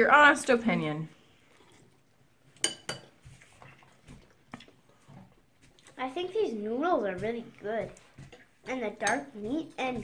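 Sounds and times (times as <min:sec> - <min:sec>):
cutlery clinking on dishes: 0:02.6 - 0:03.2, 0:09.0 - 0:09.3.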